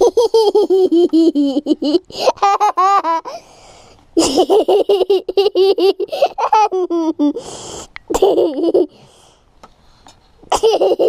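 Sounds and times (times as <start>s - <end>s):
young child laughing: 0.0s - 3.4s, 4.2s - 7.4s, 8.1s - 9.0s, 10.5s - 11.0s
child breathing in: 3.3s - 4.0s, 7.4s - 8.0s.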